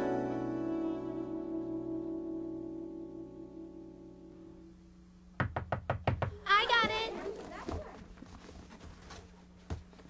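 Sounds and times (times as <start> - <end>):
small band holding a chord: 0.0 - 4.9
sharp knocks: 5.4 - 6.4.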